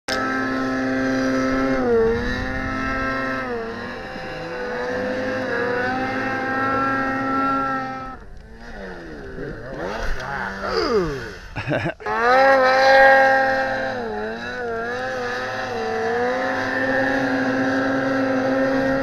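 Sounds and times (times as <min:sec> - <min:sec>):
second snowmobile engine: 0:00.1 - 0:19.0
snowmobile engine at high revs: 0:00.1 - 0:19.0.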